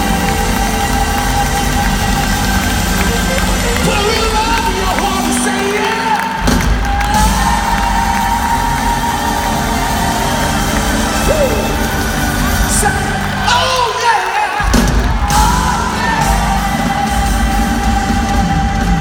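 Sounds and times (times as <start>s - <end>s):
crowd cheering: 0.0s - 19.0s
live band music: 0.0s - 19.0s.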